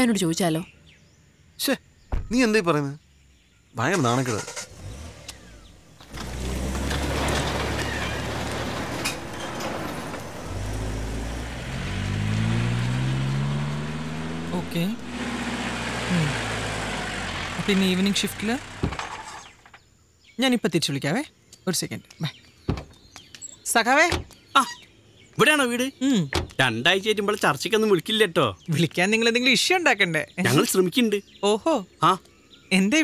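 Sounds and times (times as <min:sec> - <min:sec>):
car engine rumble: 0:03.8 - 0:19.8, 0:22.5 - 0:25.3.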